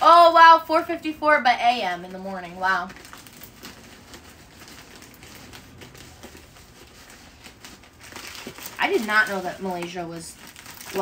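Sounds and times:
plastic bag crinkling: 0:02.1 - 0:11.0.

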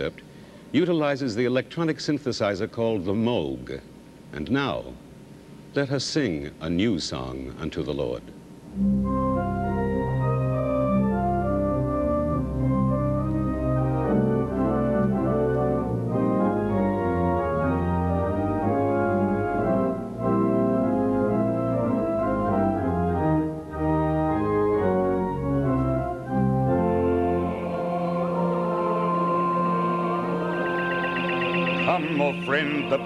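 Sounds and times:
synthesizer playing sustained chords: 0:08.7 - 0:33.0.

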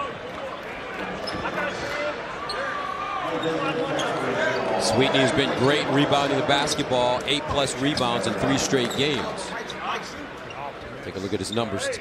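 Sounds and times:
crowd chatter: 0:00.0 - 0:12.0
crowd hum: 0:03.2 - 0:12.0.

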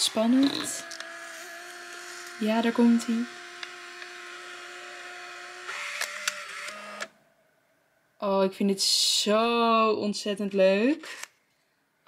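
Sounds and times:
printer motor whine: 0:00.0 - 0:07.2.

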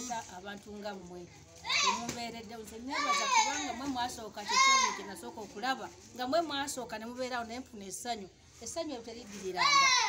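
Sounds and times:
children crying and shouting: 0:01.6 - 0:02.1, 0:02.9 - 0:05.1, 0:09.6 - 0:10.0.

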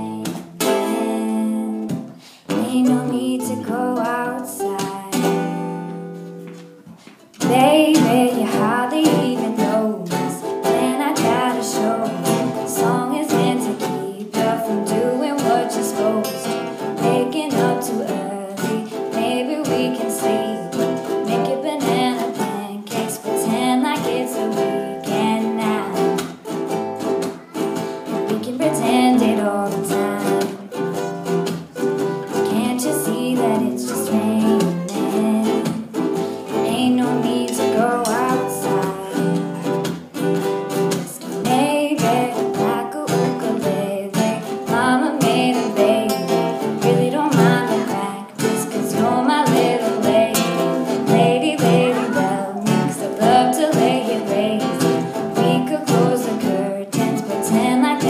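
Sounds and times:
person singing: 0:00.0 - 0:06.0, 0:07.4 - 0:39.9, 0:40.7 - 0:58.0
strummed string instruments: 0:00.0 - 0:58.0.

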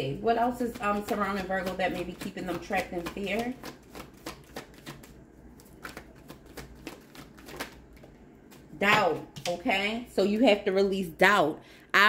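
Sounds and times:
cards being shuffled: 0:01.0 - 0:08.7.

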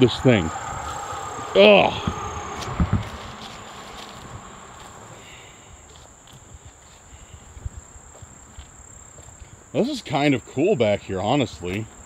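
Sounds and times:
footsteps through brush: 0:00.0 - 0:10.2
distant road traffic rumble: 0:00.0 - 0:12.0
insects droning: 0:00.0 - 0:12.0.

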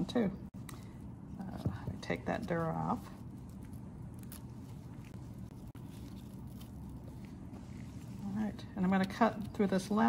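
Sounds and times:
low room hum: 0:00.0 - 0:10.0
gloved hands handling tissue: 0:00.6 - 0:10.0.

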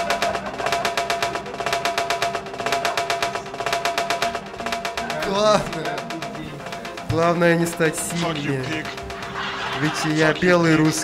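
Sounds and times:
sharp percussive clicks: 0:00.0 - 0:11.0.

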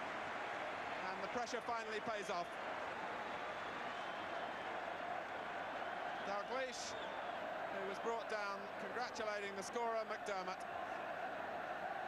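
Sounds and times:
stadium crowd cheering: 0:00.0 - 0:12.0.

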